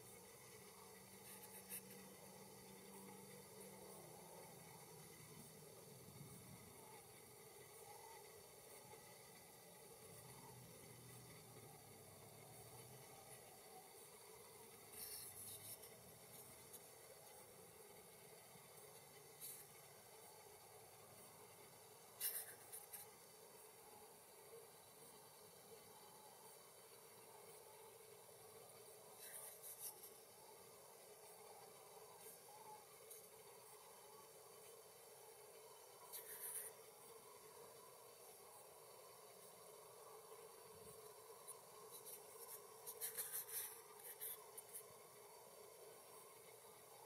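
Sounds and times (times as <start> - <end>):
faint steady hiss: 0.0 - 47.0.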